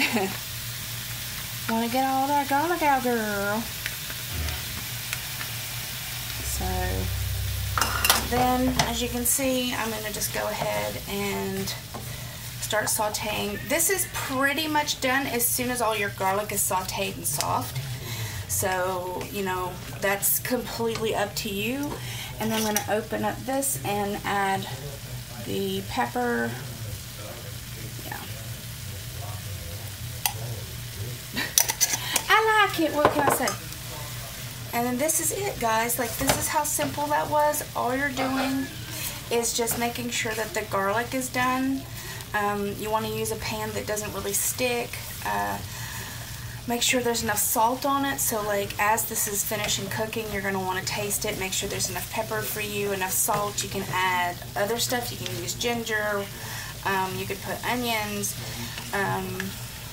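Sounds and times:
food sizzling in a wok: 0.0s - 59.9s
steady low hum: 4.0s - 12.8s.

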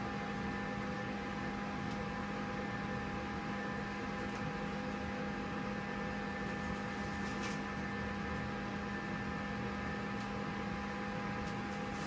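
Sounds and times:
electric fan motor hum: 0.0s - 12.0s.

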